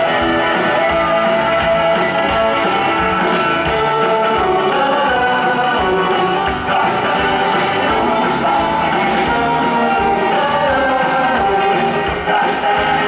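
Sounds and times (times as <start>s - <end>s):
drum beat: 0.0s - 13.0s
rock band playing: 0.0s - 13.0s
person singing: 3.7s - 13.0s.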